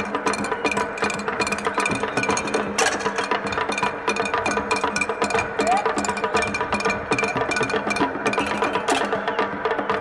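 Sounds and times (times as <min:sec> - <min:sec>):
fast percussion strokes: 0:00.0 - 0:10.0.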